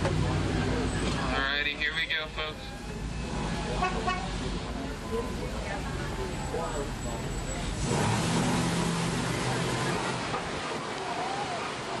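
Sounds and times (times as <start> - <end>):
faint voices: 0.0 - 12.0
road noise: 0.0 - 12.0.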